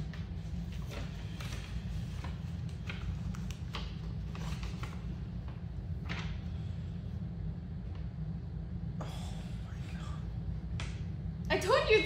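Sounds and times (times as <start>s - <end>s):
paper handling: 0.0s - 6.4s
room hum: 0.0s - 12.0s.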